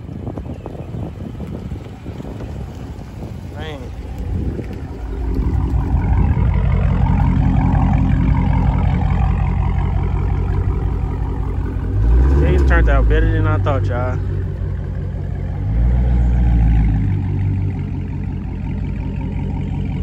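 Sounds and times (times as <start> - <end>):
car engine exhaust rumble: 0.0 - 20.0.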